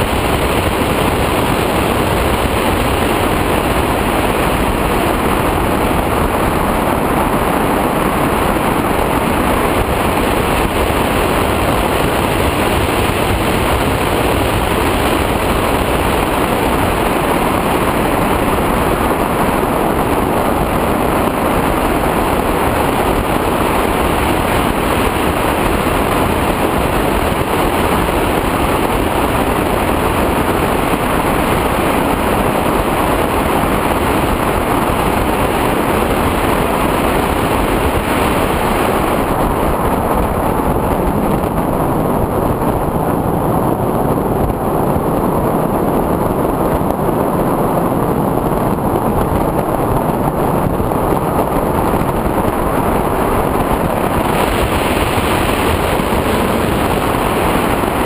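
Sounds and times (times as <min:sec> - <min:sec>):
rushing wind on glider: 0:00.0 - 0:58.0.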